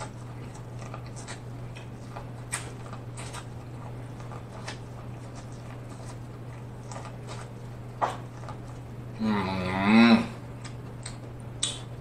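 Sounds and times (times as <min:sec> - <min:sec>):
man humming mmm while chewing: 0:09.1 - 0:11.8.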